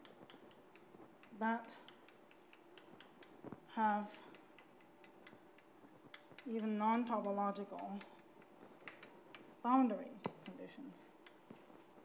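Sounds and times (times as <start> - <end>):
chalk tapping on blackboard: 0.0 - 12.0.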